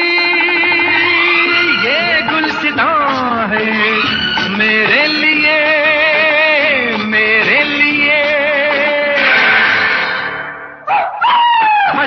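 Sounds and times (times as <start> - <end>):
old film song: 0.0 - 10.2.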